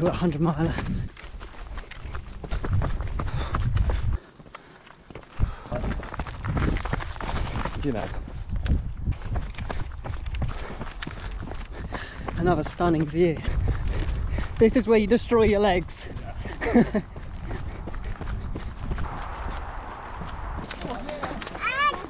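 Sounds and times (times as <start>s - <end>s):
running footsteps on trail: 0.0s - 22.0s
low rumble: 16.5s - 22.0s.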